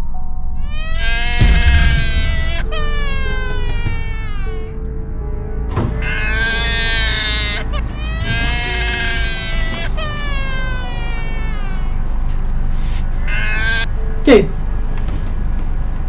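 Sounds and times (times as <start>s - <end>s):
recorded baby crying: 0.6s - 4.8s, 6.0s - 12.1s, 13.2s - 13.9s.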